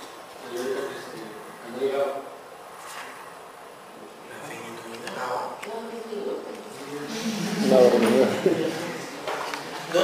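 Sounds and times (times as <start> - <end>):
murmuring voices: 6.7 - 10.0.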